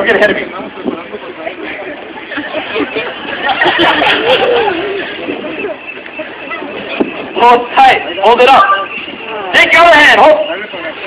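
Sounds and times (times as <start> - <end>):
murmur of crowd voices: 0.0 - 11.0.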